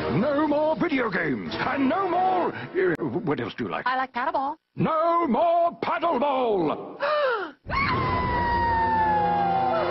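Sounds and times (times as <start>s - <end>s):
high-pitched scream: 7.7s - 9.9s.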